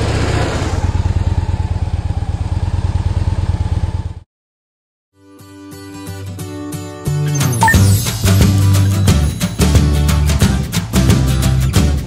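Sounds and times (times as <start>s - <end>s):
motorcycle engine idling: 0.8s - 4.2s.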